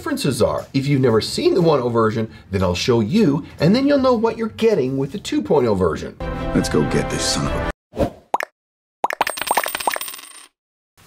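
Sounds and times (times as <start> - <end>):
coins clinking: 9.2 - 10.6.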